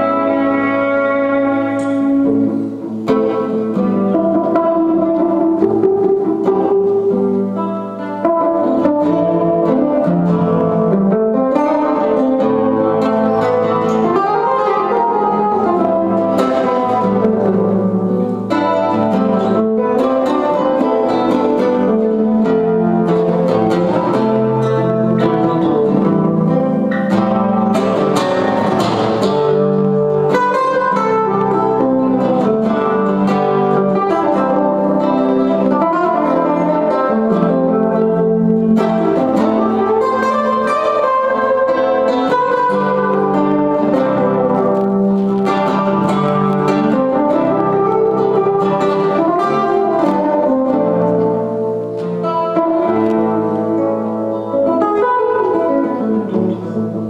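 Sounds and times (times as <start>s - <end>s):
jazz guitars playing: 0.0s - 57.0s.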